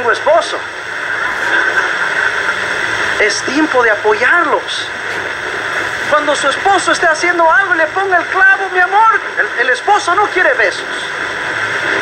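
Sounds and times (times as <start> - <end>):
radio static and hiss: 0.0 - 12.0.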